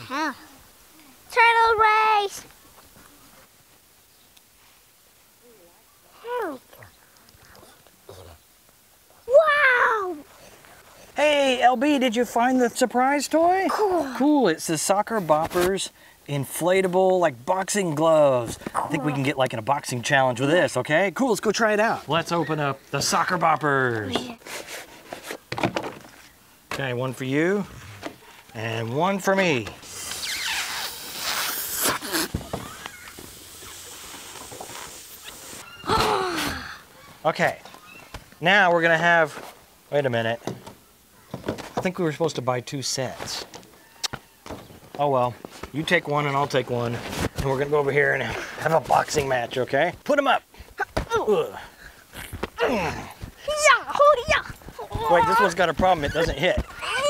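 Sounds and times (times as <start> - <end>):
breathy puffs into inflatable: 29.8 - 36.9.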